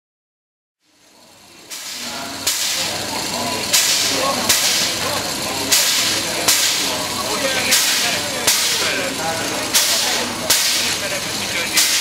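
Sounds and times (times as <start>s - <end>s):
steam hissing: 1.6s - 12.0s.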